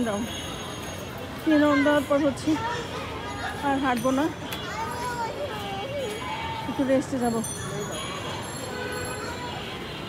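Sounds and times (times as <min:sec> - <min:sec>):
outdoor background noise: 0:00.0 - 0:10.0
children calling out: 0:04.6 - 0:06.8, 0:07.7 - 0:10.0.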